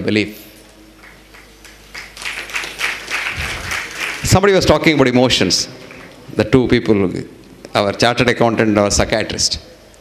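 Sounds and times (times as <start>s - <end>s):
audience applause: 1.0s - 5.3s.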